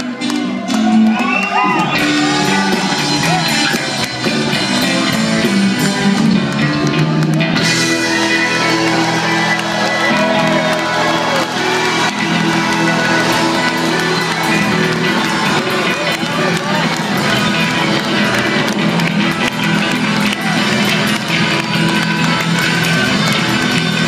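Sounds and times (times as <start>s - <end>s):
crowd voices: 0.0s - 24.0s
rock band playing live: 0.0s - 24.0s.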